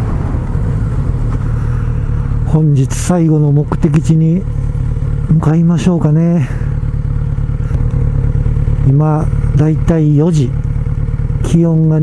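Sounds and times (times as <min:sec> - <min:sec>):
motorcycle engine rumbling: 0:00.0 - 0:12.0.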